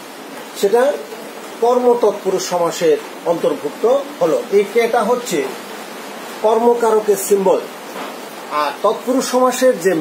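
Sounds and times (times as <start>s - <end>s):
steady background hiss: 0.0s - 10.0s
man speaking: 0.6s - 5.6s, 6.4s - 7.8s, 8.5s - 10.0s.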